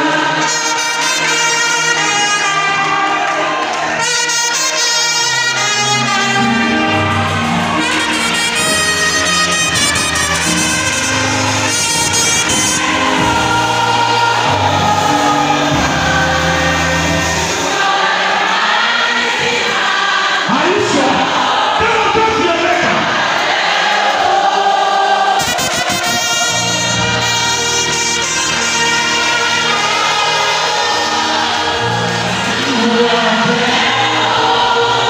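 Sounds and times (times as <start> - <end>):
band with steady bass: 0.0 - 18.0, 25.4 - 35.0
choir singing: 0.0 - 35.0
trumpet: 0.0 - 35.0.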